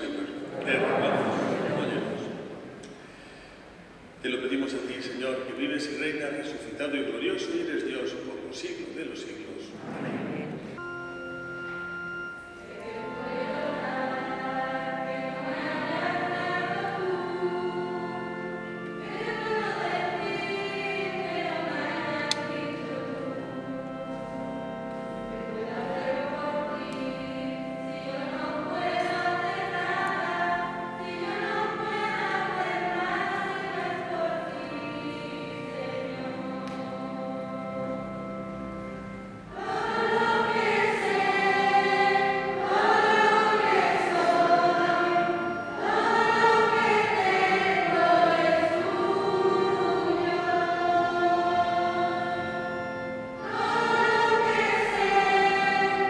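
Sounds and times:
children's choir singing: 0.0 - 2.9, 9.6 - 56.0
instrumental accompaniment: 9.8 - 56.0.

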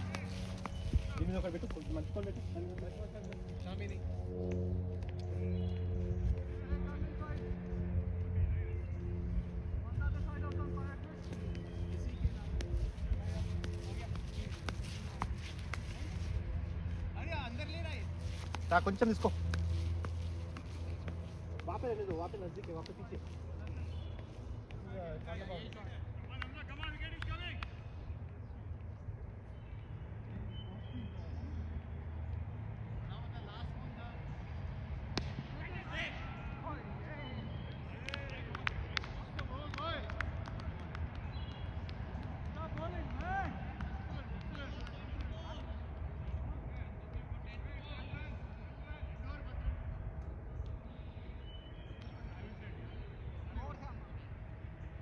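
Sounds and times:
steady low hum: 0.0 - 27.0
faint distant voices: 5.3 - 55.0.

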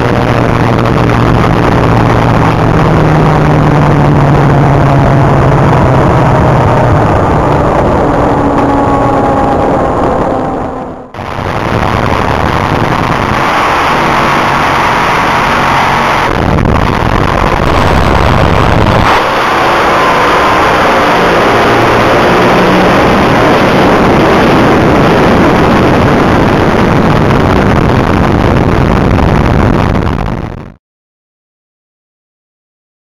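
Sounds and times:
dragster engine roaring: 0.0 - 30.1
rushing air: 0.0 - 30.3.

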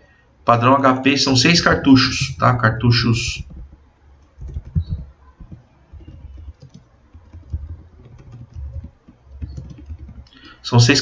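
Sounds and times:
keyboard typing: 3.2 - 11.0.

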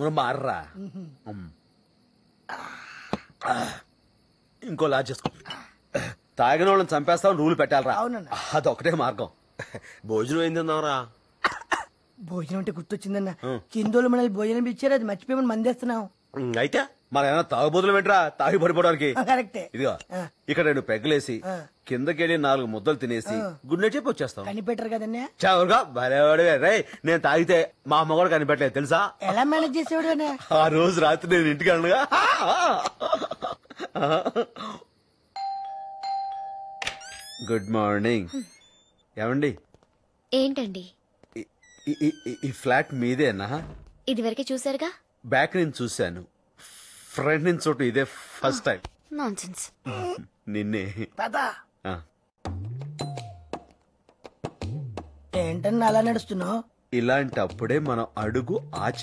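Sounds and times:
man coughing: 11.4 - 11.9, 49.9 - 50.3
two-tone doorbell chime: 35.4 - 37.0.

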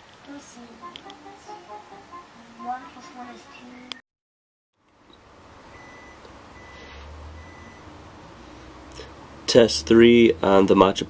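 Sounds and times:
faint high-pitched beep: 5.7 - 7.8.

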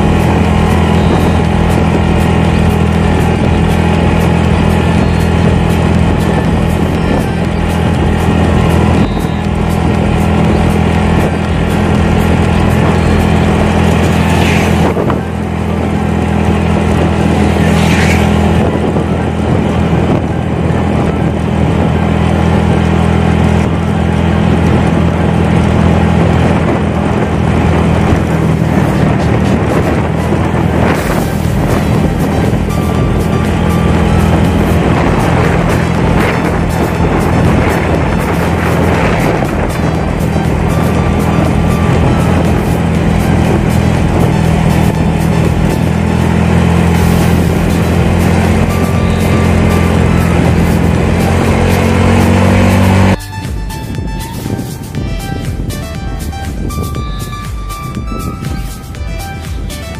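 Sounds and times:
motorcycle engine cruising: 0.0 - 59.9
wind on microphone: 0.0 - 59.9.

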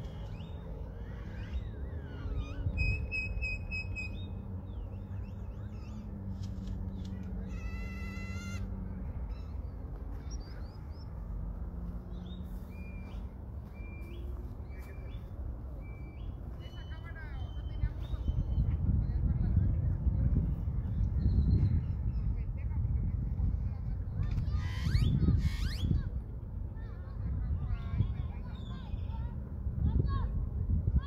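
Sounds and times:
birds chirping and whistling: 0.0 - 6.1, 12.1 - 18.7, 24.2 - 26.0
low outdoor rumble: 0.0 - 31.0.

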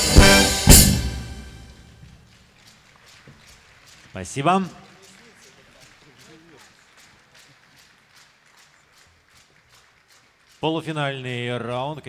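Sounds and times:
audience clapping in unison: 2.0 - 12.0.

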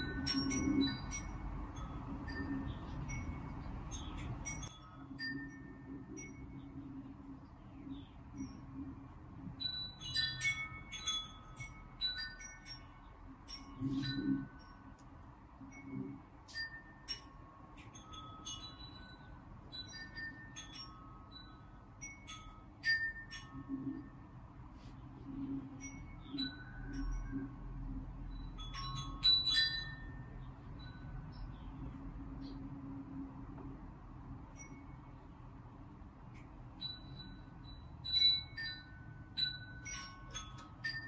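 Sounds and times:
bell-like chime music: 0.0 - 6.9, 9.6 - 24.4, 25.7 - 31.8, 36.7 - 41.0.

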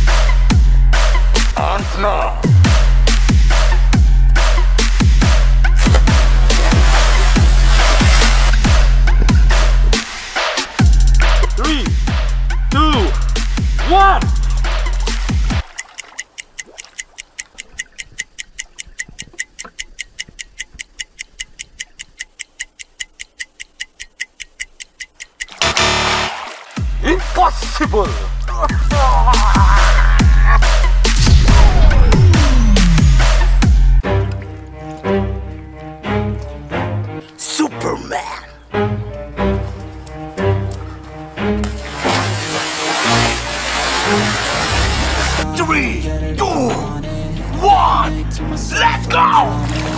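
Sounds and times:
background music: 0.0 - 16.2, 25.6 - 49.9
water churning and sloshing: 5.4 - 11.5, 14.4 - 20.9, 25.3 - 29.1, 34.0 - 37.4, 38.8 - 45.5, 49.4 - 49.9
clock ticking: 8.4 - 26.3, 27.0 - 33.8
loud burst of sound: 31.2 - 33.1
big splash into pool: 41.7 - 45.4.

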